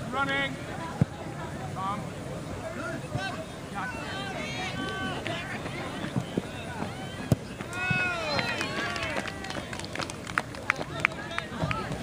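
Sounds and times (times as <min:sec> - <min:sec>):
distant voices shouting: 0:02.0 - 0:10.0.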